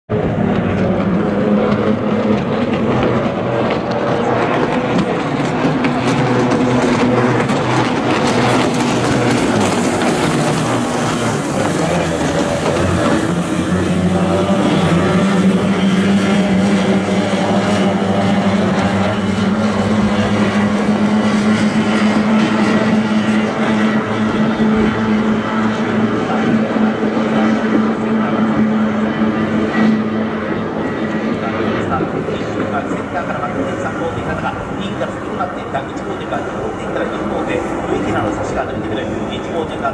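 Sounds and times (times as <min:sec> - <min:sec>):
racing boat engines passing: 0:00.1 - 0:39.9.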